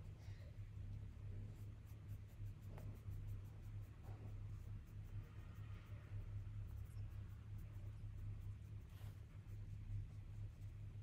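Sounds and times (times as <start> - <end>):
steady low hum: 0.0 - 11.0
paintbrush scratching on paper: 1.0 - 11.0.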